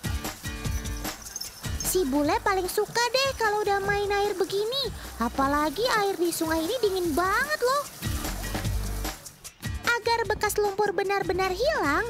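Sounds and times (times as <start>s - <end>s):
background music: 0.0s - 12.0s
water splashing: 1.1s - 9.4s.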